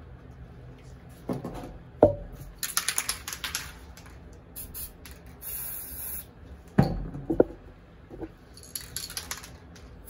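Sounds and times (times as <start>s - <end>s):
spray can ball rattling: 2.5s - 6.3s, 8.6s - 10.0s.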